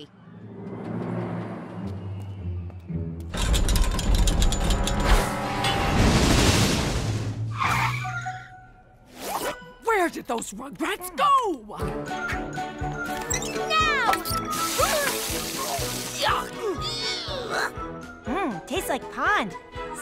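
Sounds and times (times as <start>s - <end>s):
roller coaster rattling on track: 3.4s - 5.1s
cartoon background music: 7.5s - 20.0s.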